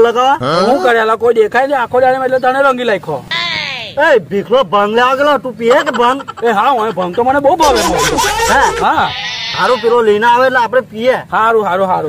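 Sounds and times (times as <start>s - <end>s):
men talking: 0.0s - 3.2s, 4.0s - 12.0s.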